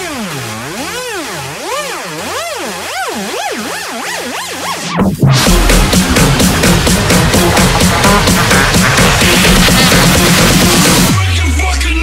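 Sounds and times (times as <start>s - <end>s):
held low synth notes: 0.0s - 11.2s
swooping synth: 0.0s - 12.0s.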